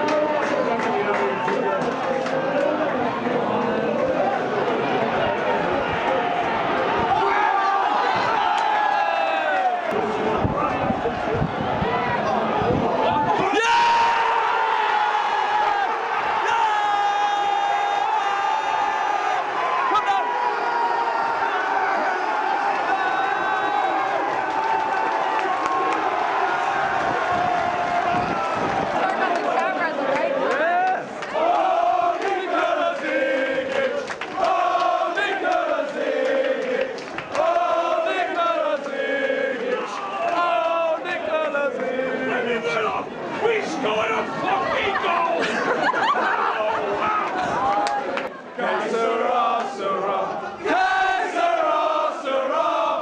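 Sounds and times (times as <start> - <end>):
football crowd roaring: 0.0 - 53.0
fans chanting in rhythm: 14.3 - 45.7, 46.5 - 53.0.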